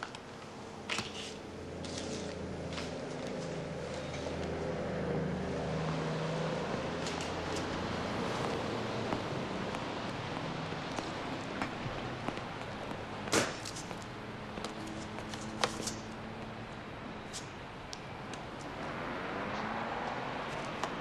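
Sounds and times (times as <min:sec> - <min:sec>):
passing cars: 0:00.0 - 0:21.0.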